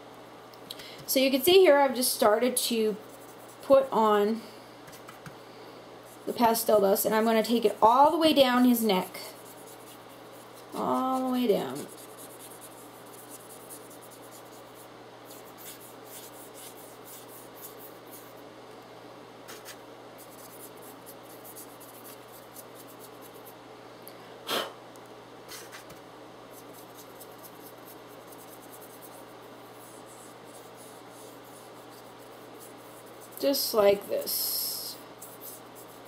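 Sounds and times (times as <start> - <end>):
low steady hum: 0.0 - 36.0
brush scratching strokes: 3.0 - 3.7, 9.3 - 18.4, 19.5 - 23.6, 26.5 - 36.0.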